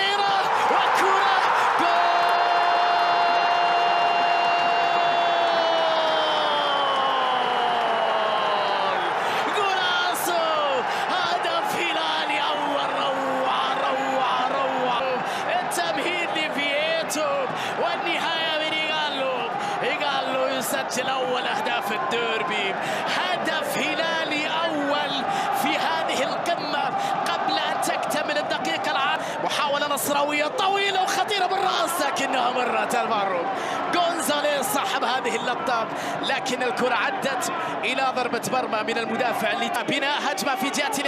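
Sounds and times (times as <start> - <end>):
commentator shouting: 0.0 - 41.0
excited rapid commentary: 0.0 - 41.0
stadium crowd noise: 0.0 - 41.0.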